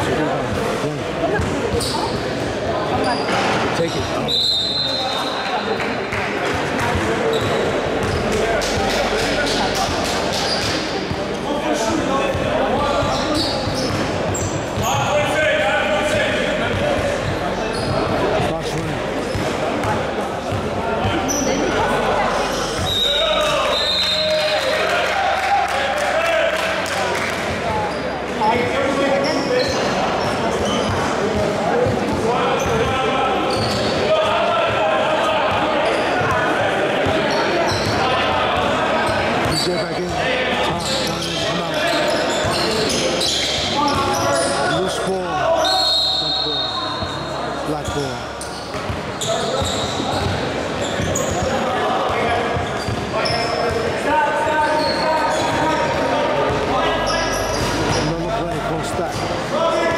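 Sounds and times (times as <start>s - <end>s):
voices of players and spectators: 0.0s - 59.9s.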